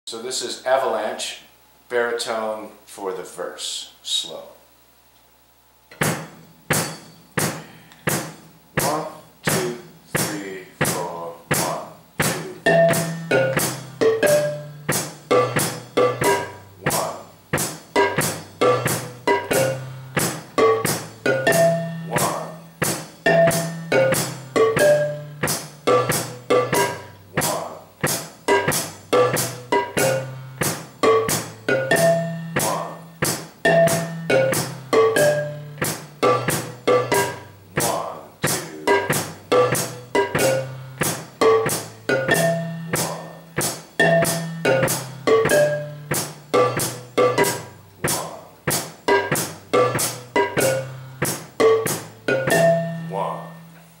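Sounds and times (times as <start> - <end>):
marimba playing low notes: 12.5 - 17.2, 18.0 - 37.9, 38.8 - 48.4, 49.1 - 53.7.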